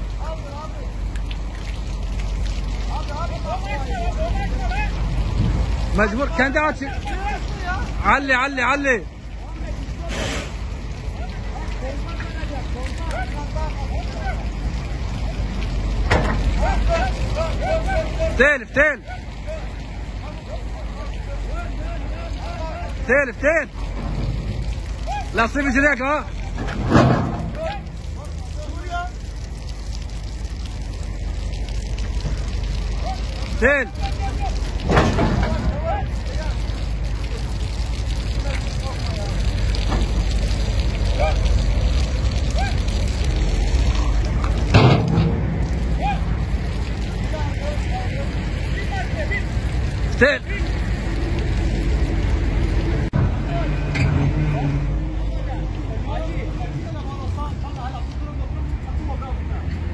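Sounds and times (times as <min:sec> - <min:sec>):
excavator diesel engine rumbling: 0:00.0 - 0:57.6.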